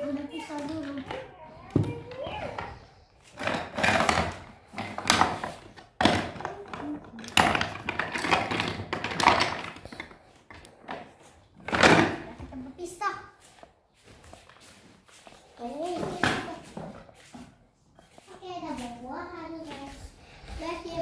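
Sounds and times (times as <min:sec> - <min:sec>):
toy pieces clattering: 0:03.3 - 0:10.8.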